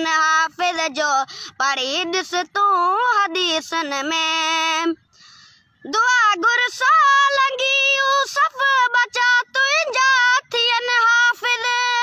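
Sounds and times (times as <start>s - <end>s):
boy singing: 0.0s - 5.0s, 5.8s - 12.0s
boy breathing: 1.2s - 1.6s, 5.1s - 5.8s.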